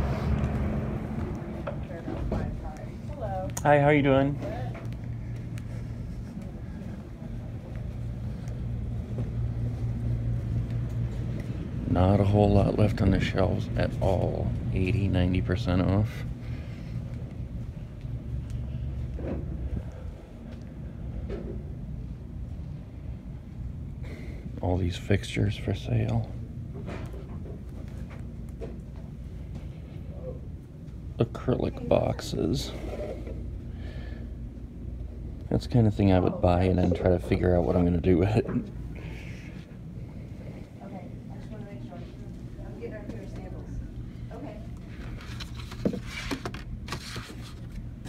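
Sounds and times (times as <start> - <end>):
low background hum: 0.0 - 48.0.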